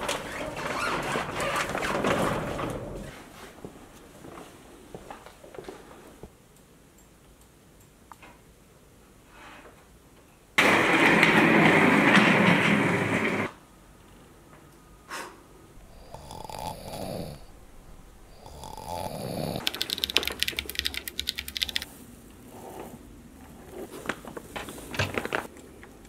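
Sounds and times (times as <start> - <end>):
man snoring: 15.8 - 19.6.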